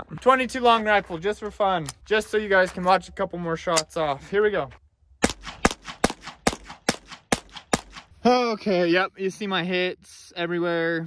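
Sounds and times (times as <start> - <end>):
rifle shots ringing: 5.2 - 8.1.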